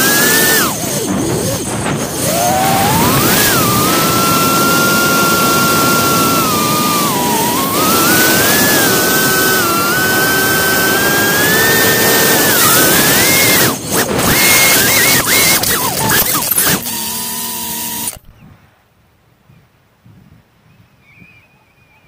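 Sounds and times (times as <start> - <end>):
wind rushing: 0.0 - 15.5
model aircraft motor whine: 0.0 - 18.5.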